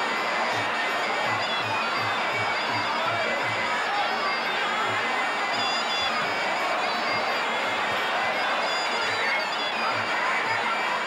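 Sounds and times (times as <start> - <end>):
drum beats: 0.0 - 11.0
stadium crowd noise: 0.0 - 11.0.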